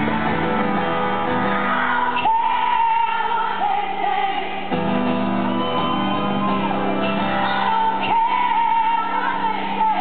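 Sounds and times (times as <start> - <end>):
woman singing: 1.8 - 4.8, 7.4 - 10.0.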